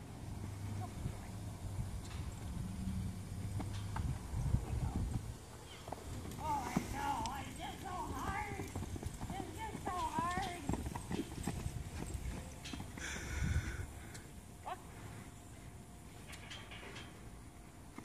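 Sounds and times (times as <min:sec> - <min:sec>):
horse hoofbeats in sand: 0:02.0 - 0:13.2.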